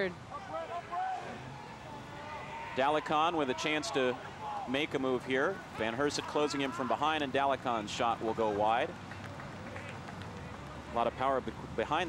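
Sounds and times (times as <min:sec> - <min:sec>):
faint distant voices: 0:00.0 - 0:12.0
soccer match background noise: 0:00.0 - 0:12.0.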